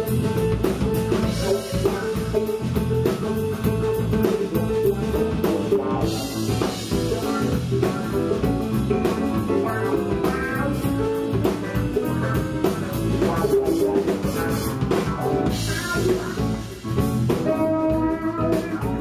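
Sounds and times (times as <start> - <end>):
bass guitar: 0.0 - 19.0
drum kit: 0.0 - 19.0
electric guitar: 0.0 - 19.0.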